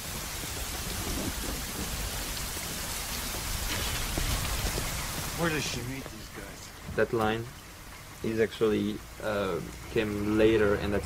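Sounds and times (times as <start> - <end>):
heavy rain hiss: 0.0 - 11.0.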